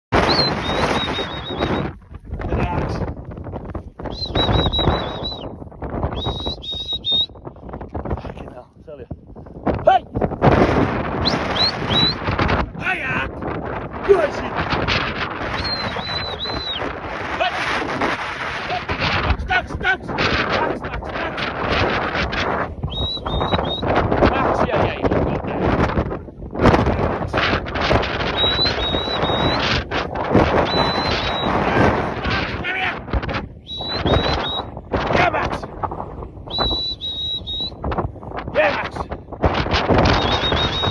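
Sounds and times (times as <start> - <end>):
wind buffeting microphone: 0.1 - 40.9
high rising whistles: 0.2 - 2.0, 4.0 - 7.4, 11.2 - 12.2, 15.5 - 16.9, 22.8 - 23.9, 28.3 - 29.8, 30.6 - 31.6, 33.6 - 34.7, 36.5 - 37.8, 40.0 - 40.9.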